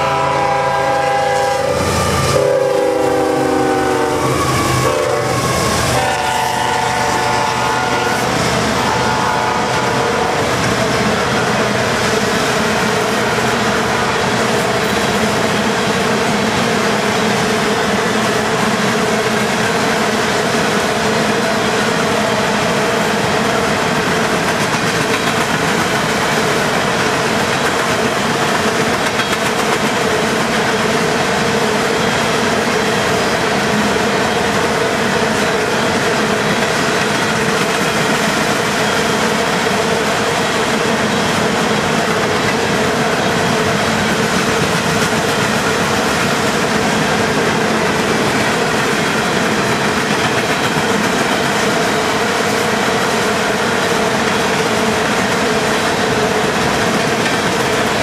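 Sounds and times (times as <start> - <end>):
locomotive air horn: 0.0 - 10.6.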